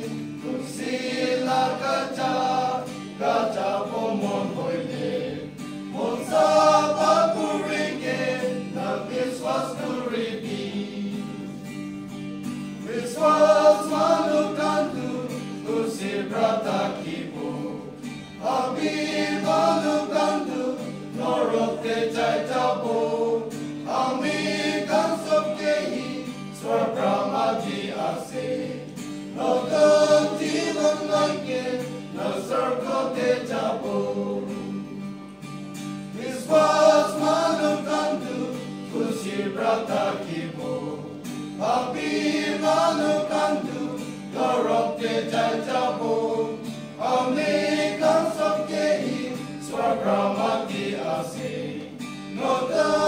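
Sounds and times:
male choir singing a hymn: 0.0 - 12.1, 12.7 - 35.2, 36.0 - 53.0
acoustic guitar: 0.0 - 53.0.

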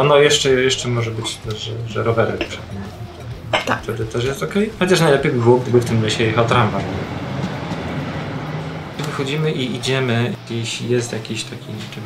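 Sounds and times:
street traffic: 0.0 - 12.0
tram wheels on rails: 4.7 - 12.0.

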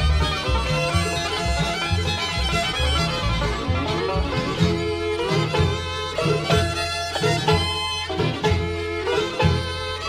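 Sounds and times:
bluegrass band with fiddle: 0.0 - 10.0.

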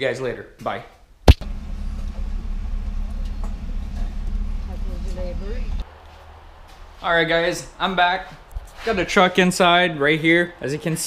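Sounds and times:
car engine idling: 1.4 - 5.8.

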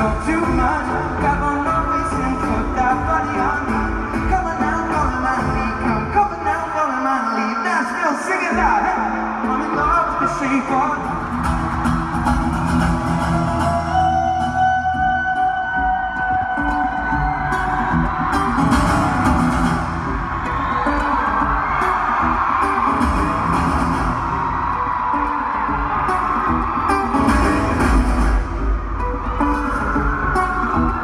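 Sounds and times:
live amplified guitar music: 0.0 - 31.0
heavy bass: 10.7 - 24.9, 25.7 - 31.0.

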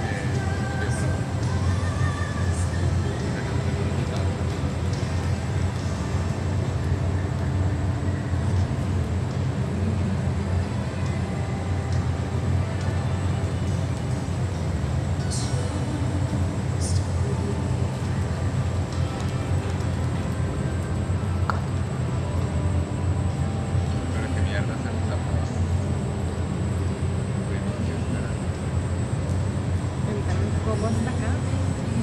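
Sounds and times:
voices: 0.0 - 5.1, 30.0 - 32.0
faint music: 0.0 - 32.0
low arena rumble: 0.0 - 32.0.

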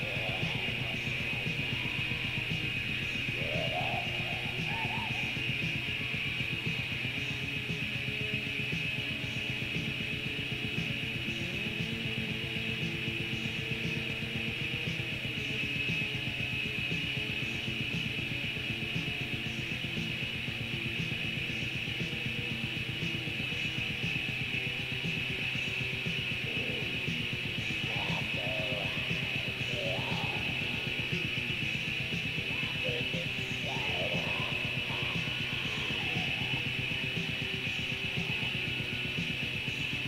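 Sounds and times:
distorted electric guitars: 0.0 - 40.0.

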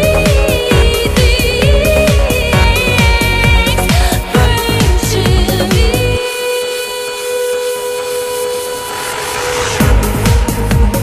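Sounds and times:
hissing wash: 6.2 - 10.8.

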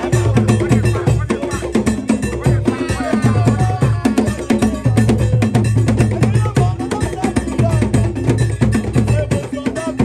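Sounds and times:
higher drum tones: 0.0 - 10.0.

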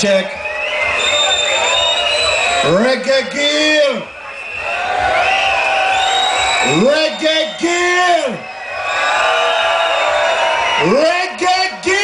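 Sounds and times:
man shouting over loudspeakers: 2.5 - 4.1, 6.6 - 8.4, 10.7 - 12.0.

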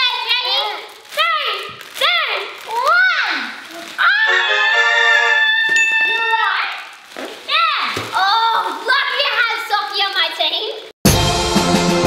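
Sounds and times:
child shouting: 2.2 - 6.8.

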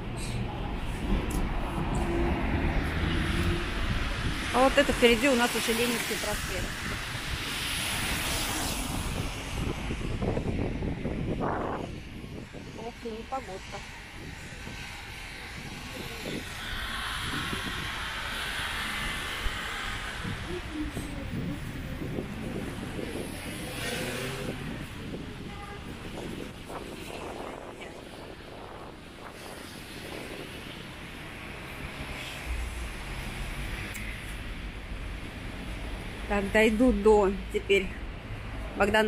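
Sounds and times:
low traffic rumble: 0.0 - 39.0
tyres hissing on wet road: 0.2 - 11.1, 12.6 - 36.3.

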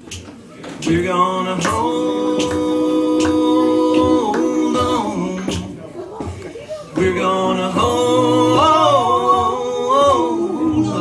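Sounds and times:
man and woman singing in harmony: 0.8 - 5.9, 6.9 - 11.0
bass: 7.0 - 11.0.

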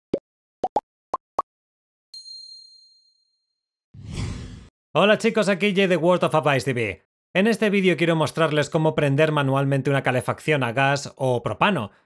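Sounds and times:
whooshing rush: 4.0 - 4.7.

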